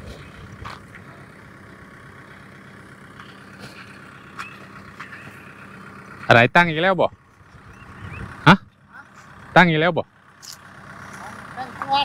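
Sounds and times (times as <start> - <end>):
faint engine hum: 0.0 - 12.0.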